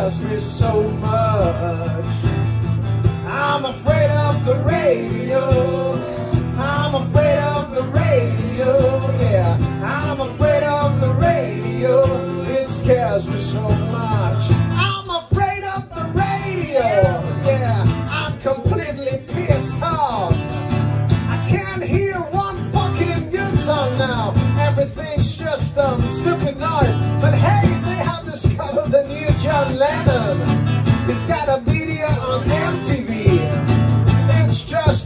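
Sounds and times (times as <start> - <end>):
man singing: 0.0 - 20.4, 21.2 - 35.0
strummed acoustic guitar: 0.0 - 35.0.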